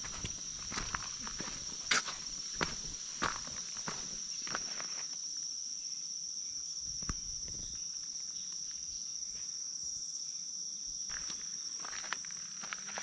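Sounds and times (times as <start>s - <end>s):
footsteps on forest floor: 0.0s - 5.2s, 11.1s - 13.0s
insect chorus drone: 0.0s - 13.0s.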